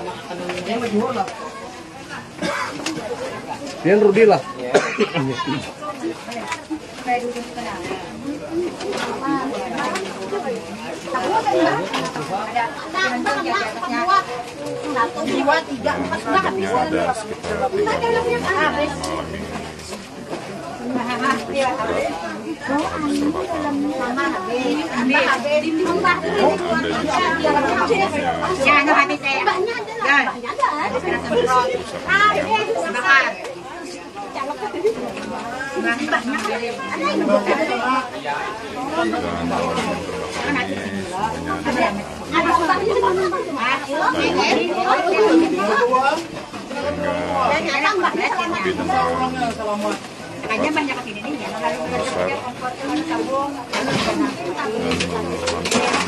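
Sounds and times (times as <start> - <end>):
overlapping voices talking: 0.0 - 56.0
low steady hum: 15.8 - 20.3, 25.8 - 29.0, 39.1 - 43.2.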